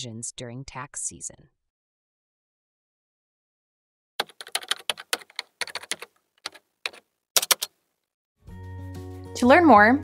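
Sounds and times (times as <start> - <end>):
computer keyboard key clicks: 4.2 - 7.7.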